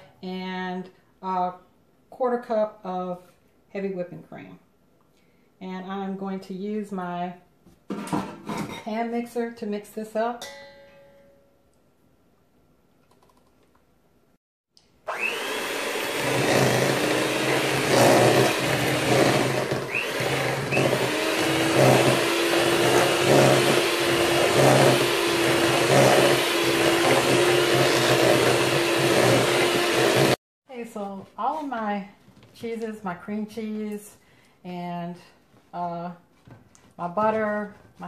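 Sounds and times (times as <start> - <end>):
electric hand mixer running: 15.1 - 30.4.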